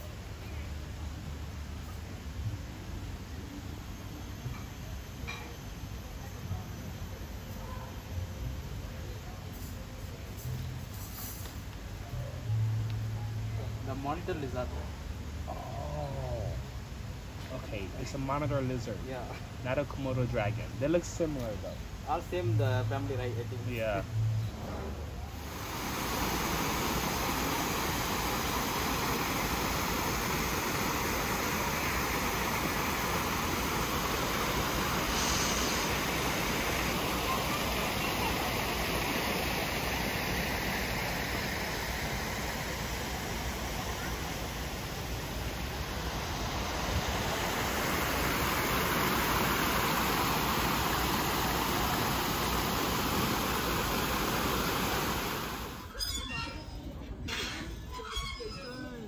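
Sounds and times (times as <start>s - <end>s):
small waterfall rushing: 25.3s - 55.9s.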